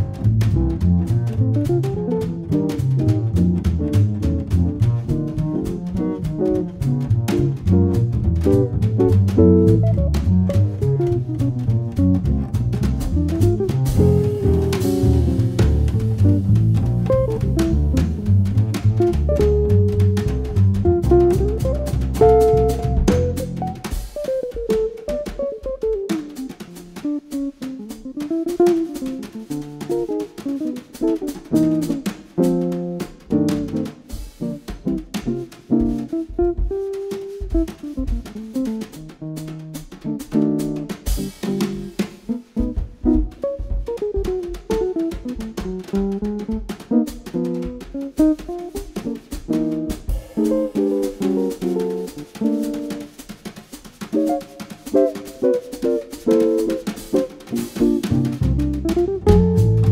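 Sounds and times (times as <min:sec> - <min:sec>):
drums played with brushes: 0:00.0 - 0:59.9
jazz electric guitar: 0:00.0 - 0:59.9
walking double bass: 0:00.0 - 0:59.9.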